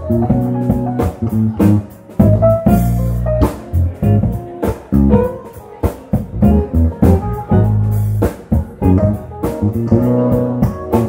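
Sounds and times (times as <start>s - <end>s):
bass guitar: 0.0s - 11.0s
drum kit: 0.0s - 11.0s
electric guitar: 0.0s - 11.0s
keyboards: 0.0s - 11.0s.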